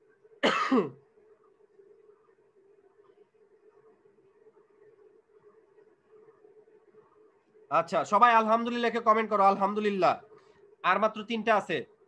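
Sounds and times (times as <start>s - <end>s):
man coughing: 0.4s - 1.0s.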